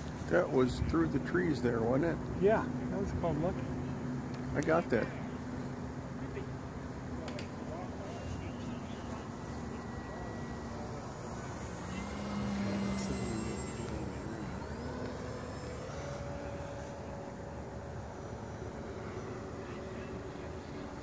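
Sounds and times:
model airplane motor humming: 0.0 - 21.0
steady background rush: 0.0 - 21.0.

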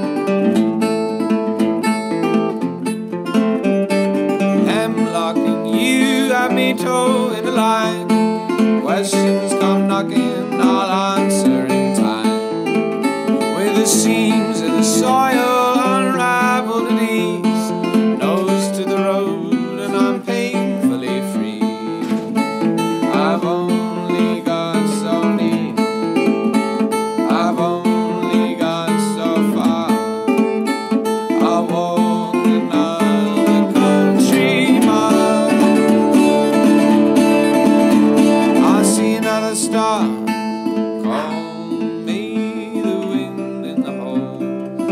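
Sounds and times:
resonator guitar playing: 0.0 - 44.9.

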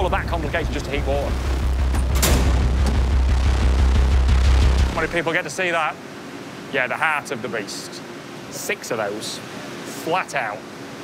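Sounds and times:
furnace rumbling: 0.0 - 5.2
metal door clank: 1.9 - 3.2.

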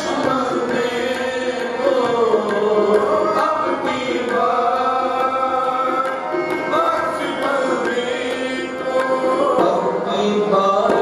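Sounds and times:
devotional chanting: 0.0 - 11.0
musical accompaniment: 0.0 - 11.0.

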